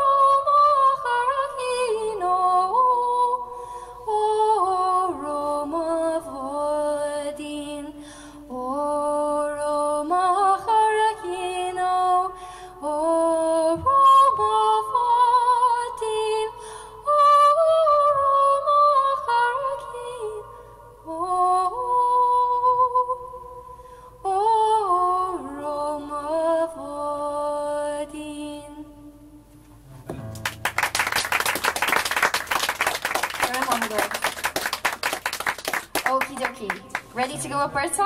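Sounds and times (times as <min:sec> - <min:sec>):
woman singing unaccompanied: 0:04.1 - 0:20.4, 0:24.3 - 0:29.3, 0:36.1 - 0:38.0
audience applauding: 0:30.3 - 0:37.2.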